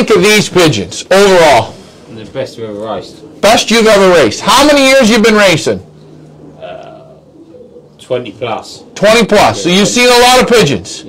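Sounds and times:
low steady hum: 0:00.0 - 0:11.0
pigeons cooing: 0:05.8 - 0:10.2.

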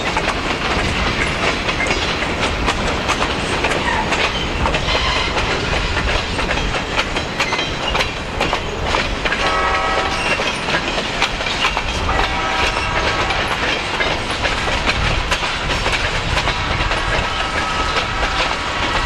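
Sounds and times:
freight train wheels clicking over rail joints: 0:00.0 - 0:19.0
train rumble: 0:00.0 - 0:19.0.

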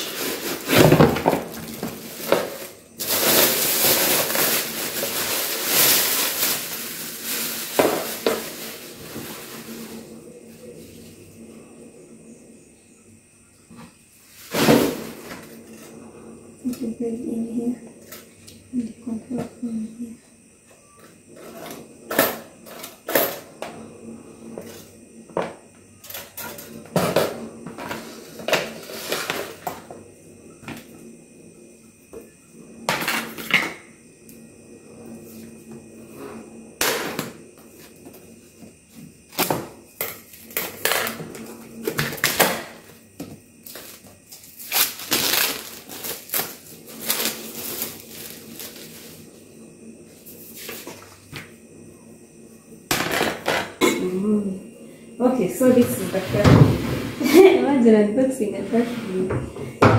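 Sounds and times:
plastic wrapping rustling: 0:00.0 - 0:10.0, 0:43.7 - 0:49.1.

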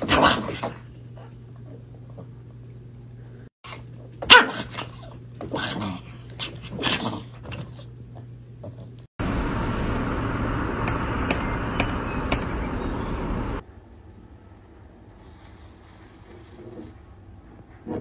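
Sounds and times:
dog barking: 0:04.2 - 0:04.9
sharp clicks: 0:10.8 - 0:12.6.

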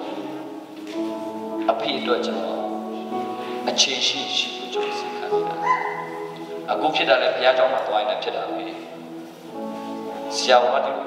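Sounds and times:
electronic keyboard chords: 0:00.0 - 0:11.0
man's voice: 0:01.6 - 0:05.7, 0:06.6 - 0:09.0, 0:10.2 - 0:11.0.

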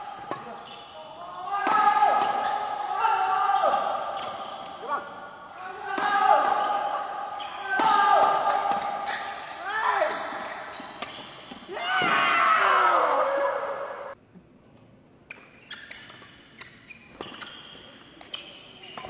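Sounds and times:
shoes squeaking on court floor: 0:00.0 - 0:02.8, 0:03.5 - 0:11.7, 0:15.2 - 0:19.0.

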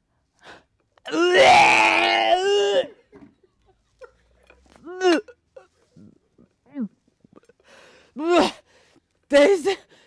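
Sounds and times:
woman retching groan: 0:01.0 - 0:03.0, 0:04.7 - 0:07.6.

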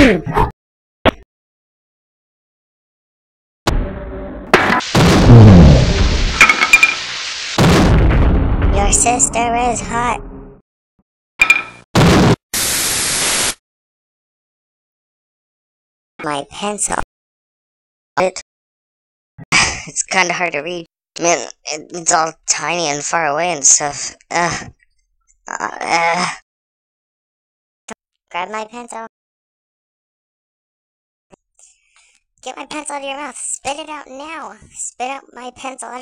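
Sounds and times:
loud noise burst: 0:03.7 - 0:10.6
tv static hiss: 0:05.6 - 0:07.6
person speaking: 0:08.7 - 0:10.2.

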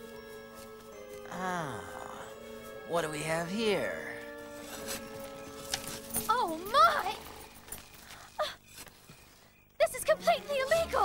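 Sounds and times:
held notes of film score: 0:00.0 - 0:11.0.

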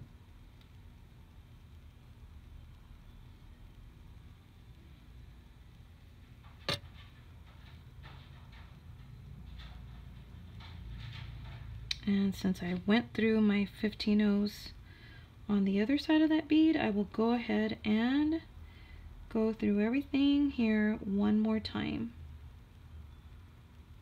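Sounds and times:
low steady hum: 0:00.0 - 0:24.0.

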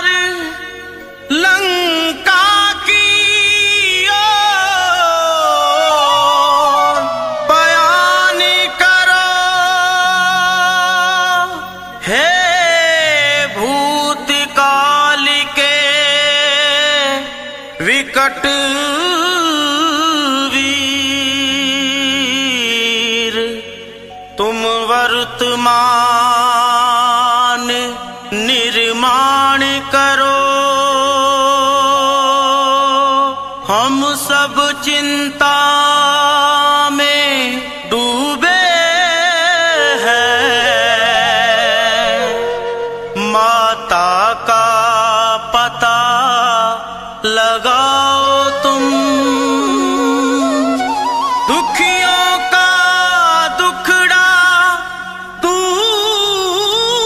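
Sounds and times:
accompanying music: 0:00.0 - 0:32.2, 0:33.7 - 0:46.7, 0:47.4 - 0:57.0
person singing devotional song: 0:00.0 - 0:57.0
instrumental accompaniment: 0:04.2 - 0:09.6, 0:39.8 - 0:43.9, 0:48.5 - 0:53.0.

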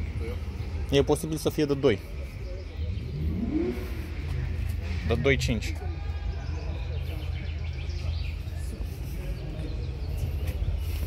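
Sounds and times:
car engine revving: 0:02.7 - 0:07.4.

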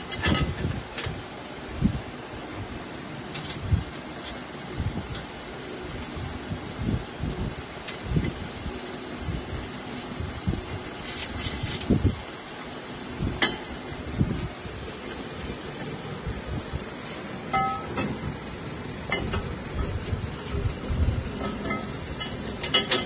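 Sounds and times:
short metallic ring: 0:17.5 - 0:18.2
metal parts knocking and clicking: 0:21.4 - 0:23.0.

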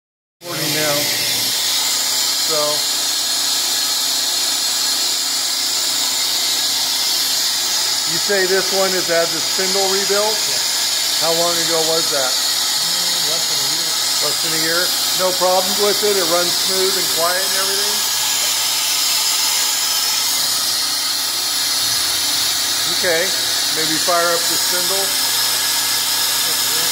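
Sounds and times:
machinery whirring and hissing: 0:00.5 - 0:06.3, 0:07.2 - 0:26.9
machinery hissing: 0:21.7 - 0:26.9.

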